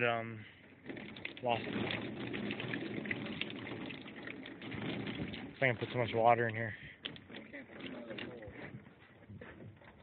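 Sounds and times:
water splashing in bucket: 0.0 - 8.6.

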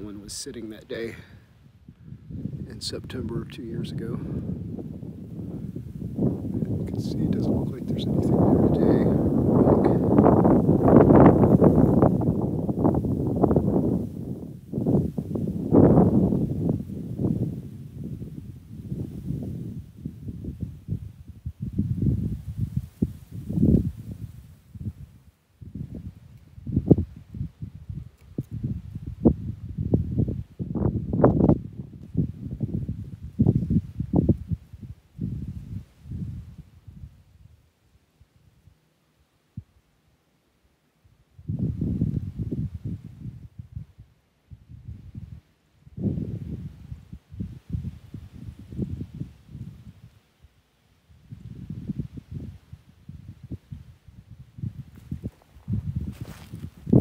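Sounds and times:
footsteps on rocky soil: 54.9 - 57.0.

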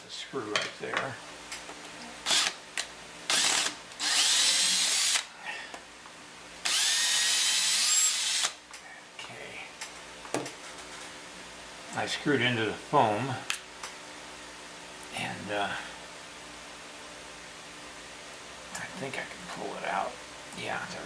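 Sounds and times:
cordless drill driving a screw: 2.3 - 2.6, 3.3 - 5.3, 6.6 - 8.6.

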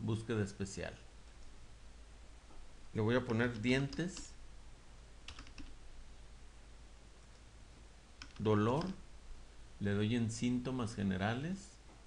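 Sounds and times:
faint room noise: 0.0 - 12.0
computer keyboard typing: 5.3 - 5.7, 8.2 - 9.0.

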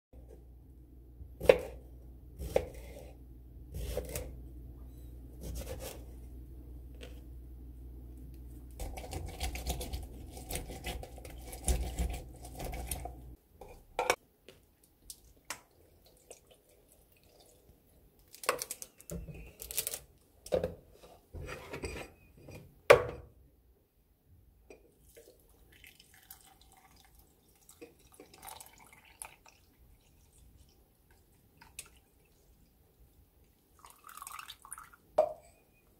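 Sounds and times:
knife slicing cucumber on board: 3.8 - 4.3, 5.4 - 6.0
water trickling into glass: 25.2 - 30.3, 33.8 - 35.0.

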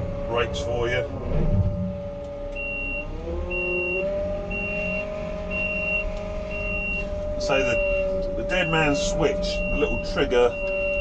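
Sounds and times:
diesel engine running: 0.0 - 11.0
reversing alarm beeping: 2.5 - 11.0.

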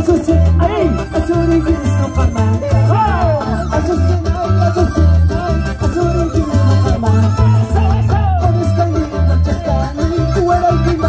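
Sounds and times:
live band through pa: 0.0 - 11.0
pounding bass beat: 0.0 - 11.0.

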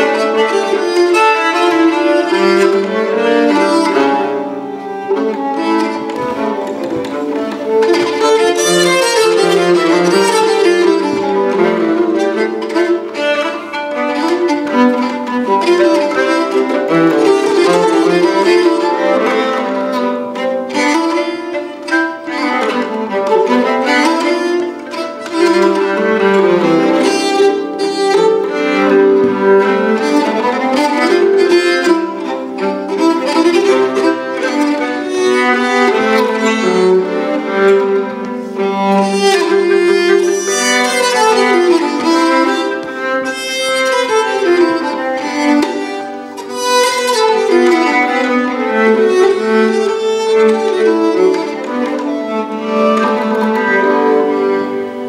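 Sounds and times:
bowed keyed fiddle duet: 0.0 - 55.0.

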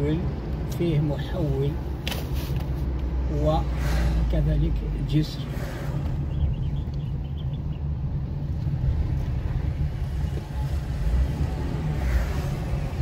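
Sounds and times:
car cabin engine and road rumble: 0.0 - 13.0.

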